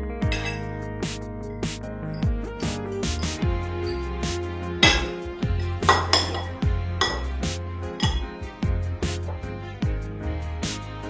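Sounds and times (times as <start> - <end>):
background music with beat: 0.0 - 11.0
cutlery clinking on plates: 0.3 - 0.7, 4.8 - 5.2, 5.8 - 7.3, 8.0 - 8.3.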